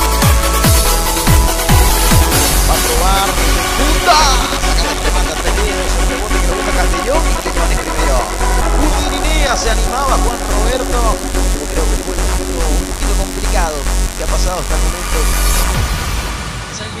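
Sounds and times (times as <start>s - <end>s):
electronic dance music: 0.0s - 17.0s
person speaking: 2.6s - 15.6s.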